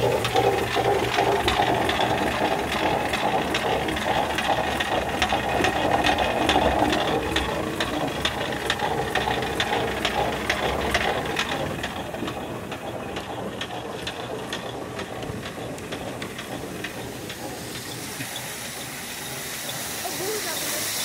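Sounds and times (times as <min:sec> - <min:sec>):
millstone grinding rumble: 0:00.0 - 0:20.7
wooden feed mechanism clicking: 0:00.0 - 0:21.0.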